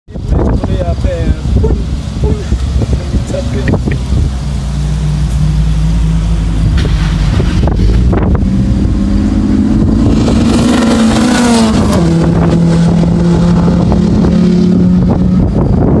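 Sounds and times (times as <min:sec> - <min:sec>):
car engines accelerating hard: 0:00.1 - 0:16.0.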